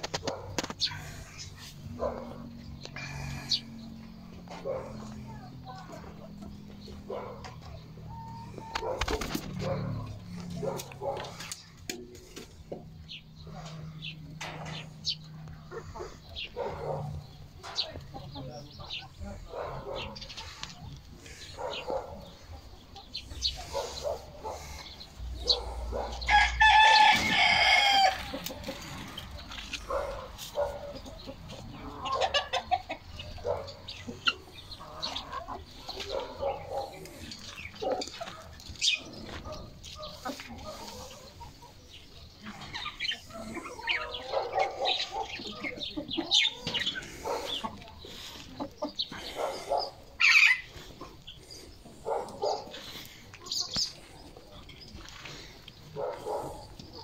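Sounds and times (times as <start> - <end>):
hens clucking: 0.0 - 57.0
rooster crowing: 26.3 - 28.3.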